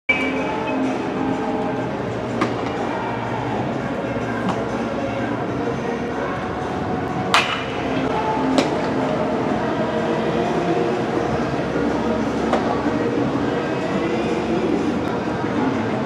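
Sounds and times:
baseball bat cracking ball: 0:07.3 - 0:07.8.

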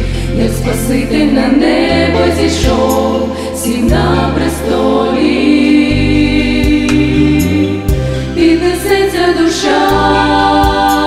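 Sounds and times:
accompaniment with bass line: 0:00.0 - 0:11.0
women singing in harmony: 0:00.0 - 0:11.0.

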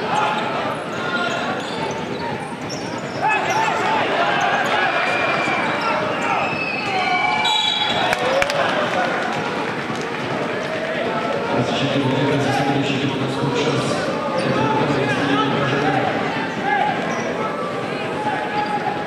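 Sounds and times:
crowd murmur: 0:00.0 - 0:19.0.

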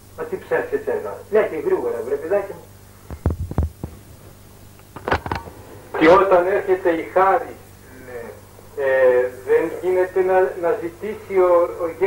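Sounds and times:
low mains hum: 0:00.0 - 0:12.0
soft thumps: 0:03.1 - 0:04.4.

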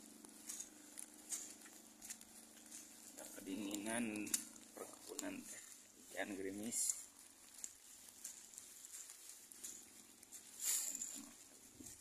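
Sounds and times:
faint low murmur: 0:00.0 - 0:12.0
faint ticks: 0:00.2 - 0:05.9, 0:06.6 - 0:12.0.

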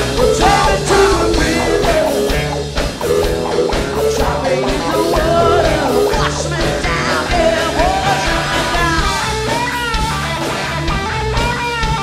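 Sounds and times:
drum and cymbal hits: 0:00.0 - 0:12.0
electric guitar: 0:00.0 - 0:12.0.

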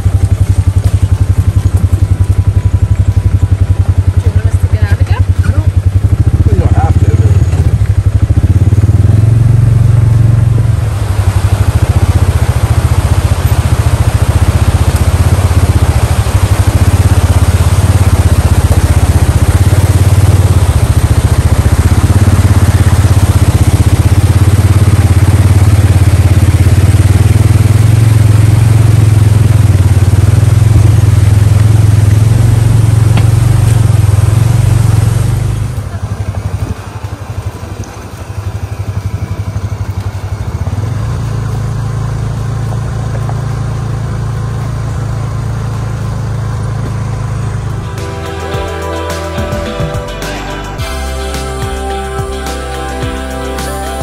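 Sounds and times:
vehicle engine droning: 0:00.0 - 0:54.0
stream rushing over rocks: 0:09.0 - 0:43.8.

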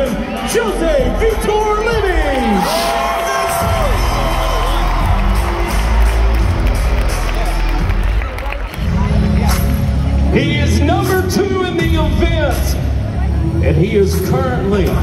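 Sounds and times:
crowd cheering and whooping: 0:00.0 - 0:08.8
loud music with heavy bass beat: 0:00.0 - 0:15.0.

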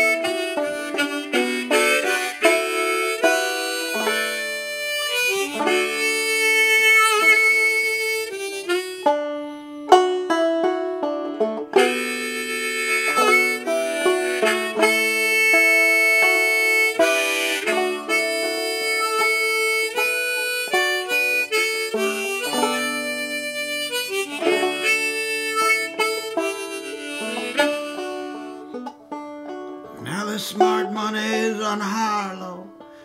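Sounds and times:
harmonica sustained notes: 0:00.0 - 0:30.1
banjo picking a tune: 0:00.0 - 0:33.0.

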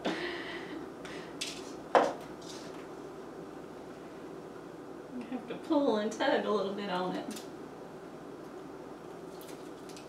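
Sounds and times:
wire scraping and rustling: 0:02.4 - 0:02.9.

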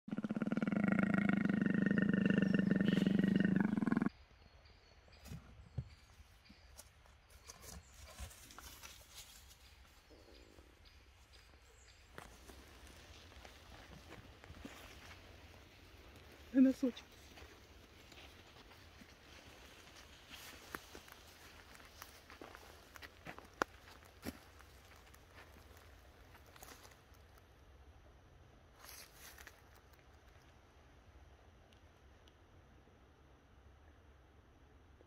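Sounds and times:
big cat growling: 0:00.1 - 0:04.1
soft rustles and ticks: 0:05.1 - 0:27.6, 0:28.8 - 0:30.6.

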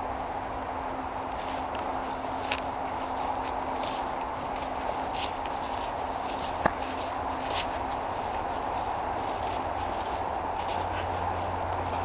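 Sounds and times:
footsteps on grass and dirt: 0:01.2 - 0:12.0.

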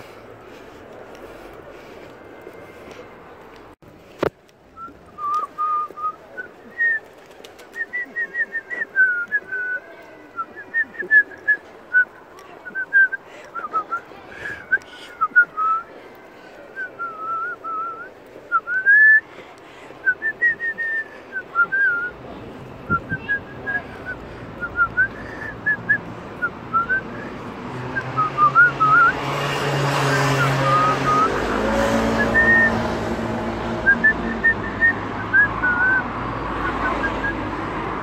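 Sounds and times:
person whistling a tune: 0:22.9 - 0:27.3, 0:32.2 - 0:32.8, 0:33.8 - 0:36.1.

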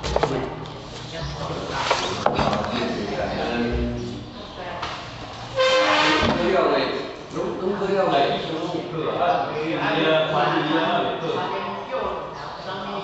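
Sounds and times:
people talking: 0:00.1 - 0:05.0, 0:05.6 - 0:13.0
loud steady tone: 0:05.5 - 0:06.4.

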